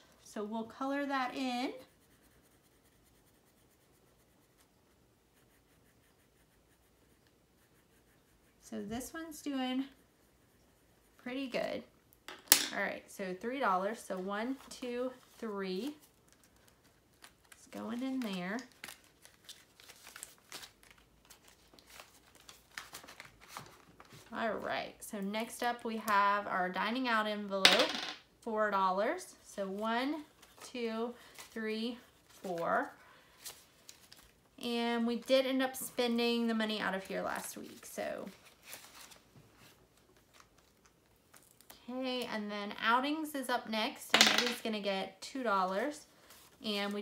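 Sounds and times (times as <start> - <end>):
pencil scratching on paper: 1.3 - 11.6
paper and plastic crinkling: 15.2 - 24.3, 33.3 - 34.4, 38.2 - 41.7.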